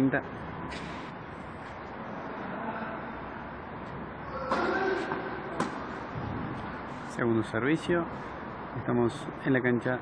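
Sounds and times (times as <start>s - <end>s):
tennis racket hitting ball: 4.5s - 5.9s.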